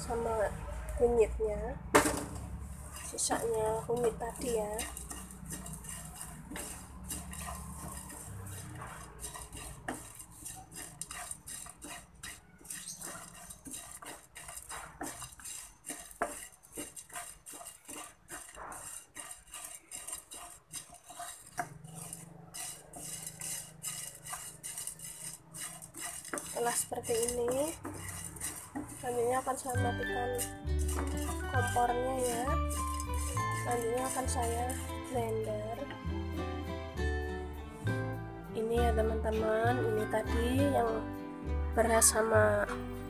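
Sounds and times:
wooden spatula scraping frying pan: 1.9s - 43.0s
rice grains rattling: 2.0s - 35.9s.

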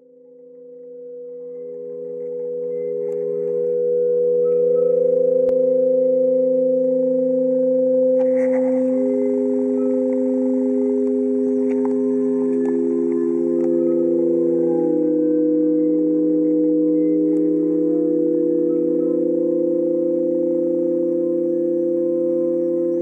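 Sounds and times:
stone slats ringing tones: 8.8s - 23.0s.

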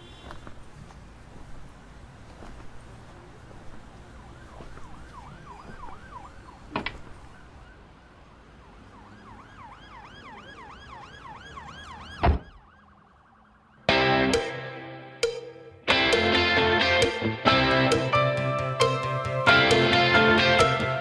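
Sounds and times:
yelp siren wailing: 4.0s - 15.2s.

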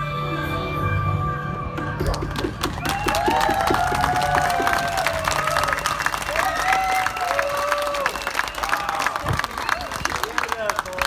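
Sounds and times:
audience applauding: 2.1s - 11.0s
audience cheering and whooping: 2.5s - 10.4s.

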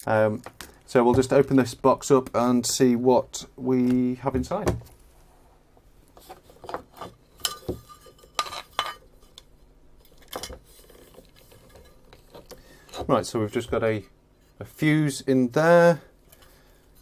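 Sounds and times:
light metallic clinks and scrapes: 6.6s - 12.6s.

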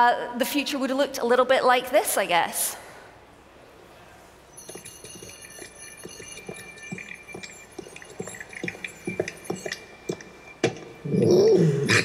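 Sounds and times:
high-pitched tones: 4.5s - 11.5s.

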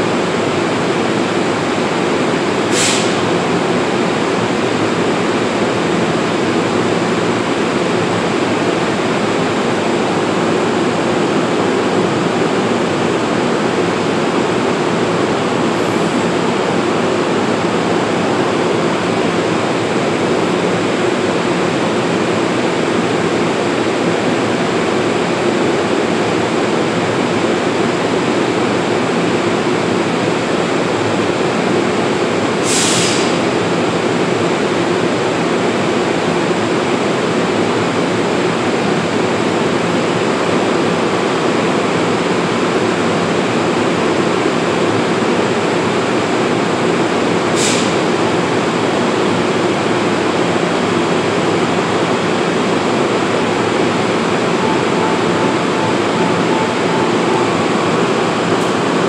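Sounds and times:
standing train droning: 0.0s - 59.0s
air hiss: 2.7s - 3.3s, 32.6s - 33.4s, 47.5s - 48.1s.

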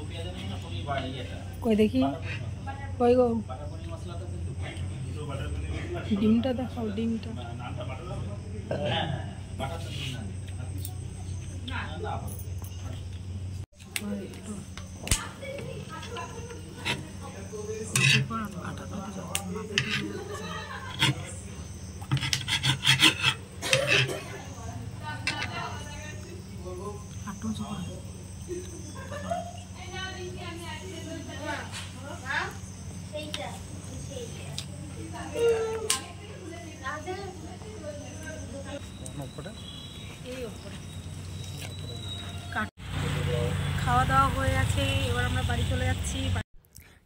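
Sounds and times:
road traffic rumble: 0.0s - 46.5s
metal spoon scraping a plate: 16.1s - 17.2s, 17.8s - 18.6s, 19.6s - 21.4s, 22.0s - 24.4s
woman talking: 24.2s - 26.4s, 29.8s - 32.6s, 43.8s - 46.4s.

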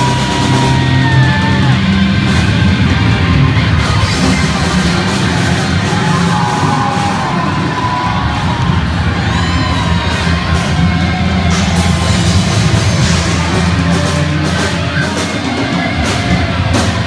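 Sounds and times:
crowd whoops: 0.0s - 14.0s
crowd cheering and shouting: 0.0s - 17.0s
rock band playing loudly: 0.0s - 17.0s.

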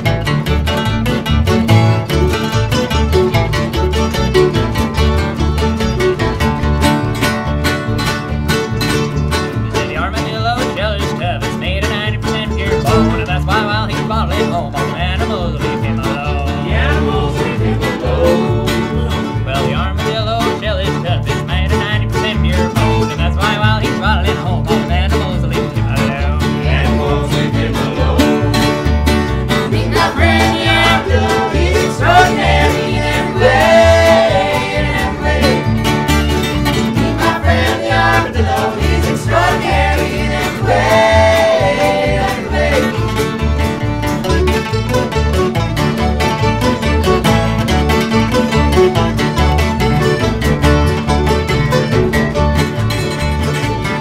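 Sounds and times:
accordion: 0.0s - 54.0s
acoustic guitars: 0.0s - 54.0s
fiddle: 0.0s - 54.0s
mandolin: 0.0s - 54.0s
upright bass: 0.0s - 54.0s.

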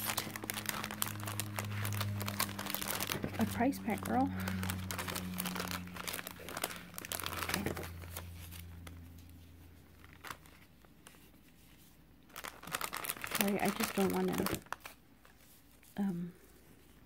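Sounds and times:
plastic packaging crinkling: 0.0s - 16.0s.

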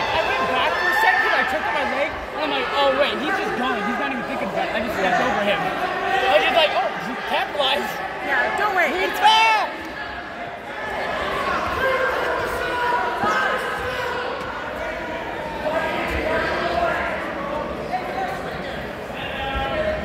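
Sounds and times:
spectators shouting and talking: 0.0s - 20.0s.

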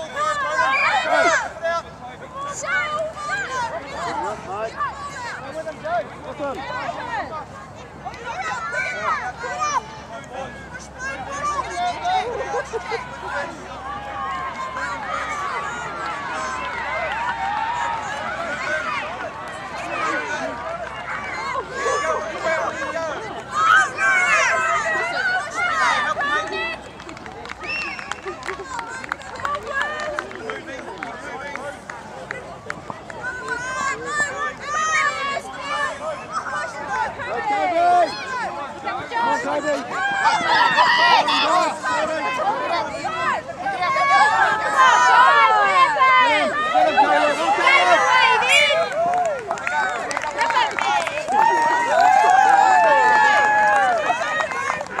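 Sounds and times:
people shouting: 0.0s - 1.7s, 33.3s - 54.7s.

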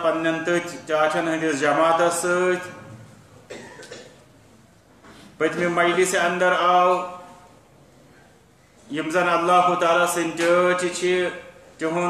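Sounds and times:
person coughing: 3.5s - 4.3s
person speaking: 5.3s - 12.0s.

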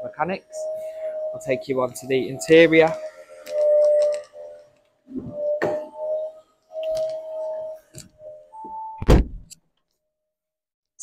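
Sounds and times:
short electronic tones: 0.0s - 9.1s
heavy car door thump: 9.0s - 9.4s.

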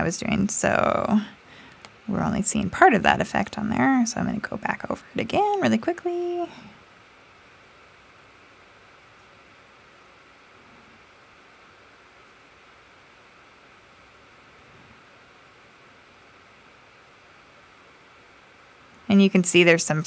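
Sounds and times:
microphone hiss: 0.0s - 20.0s.

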